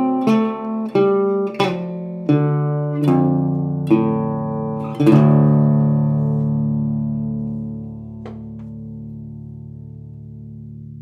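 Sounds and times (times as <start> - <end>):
blues guitar chord ringing: 0.0 - 11.0.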